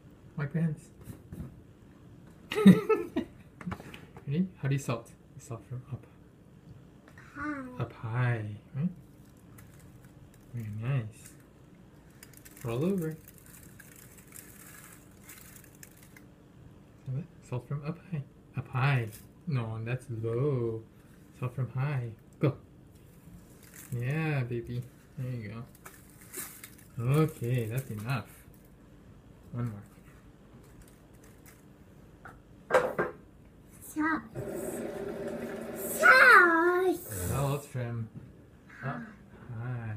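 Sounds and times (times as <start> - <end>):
toddler held voice: 7.2 - 7.9, 35.6 - 37.4
salt crinkling in plastic tub: 12.2 - 16.2, 25.7 - 28.1
toddler shouting: 35.8 - 37.2.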